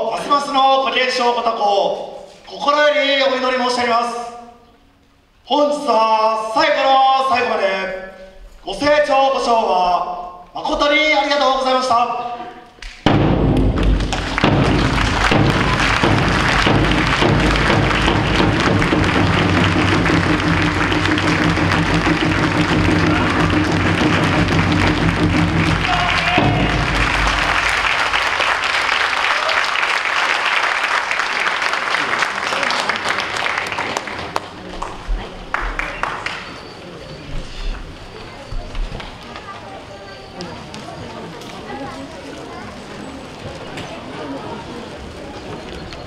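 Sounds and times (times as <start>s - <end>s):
audience applauding: 13.5s - 36.6s.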